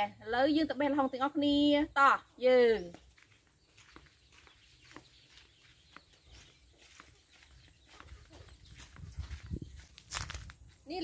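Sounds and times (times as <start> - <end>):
footsteps on dirt: 2.7 - 11.0.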